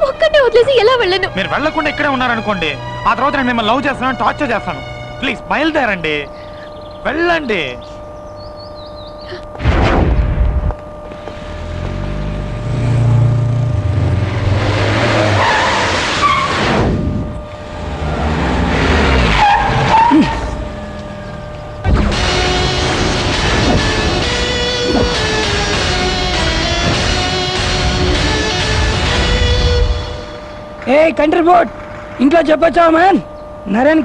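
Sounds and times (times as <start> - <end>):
background music: 0.0 - 7.8, 11.8 - 31.9
loud hit: 9.6 - 10.8
car engine revving: 11.0 - 30.8
tyres squealing and skidding: 14.0 - 16.9, 17.7 - 27.5.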